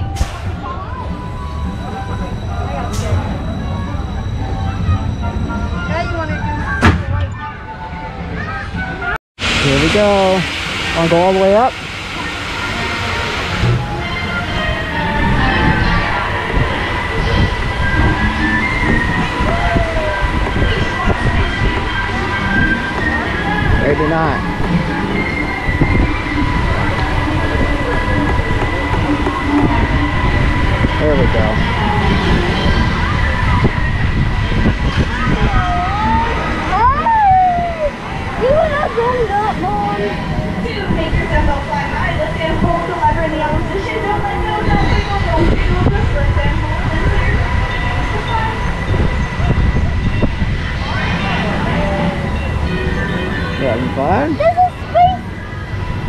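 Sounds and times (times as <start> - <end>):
wind rumbling on microphone: 11.1 - 56.0.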